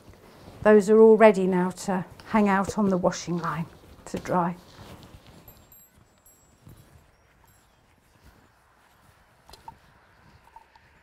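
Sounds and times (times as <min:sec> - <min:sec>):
soft handling noises: 0:02.1 - 0:11.0.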